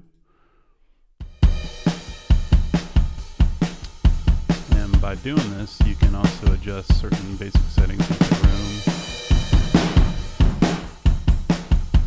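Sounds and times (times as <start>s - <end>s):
rock drum beat: 1.2s - 12.0s.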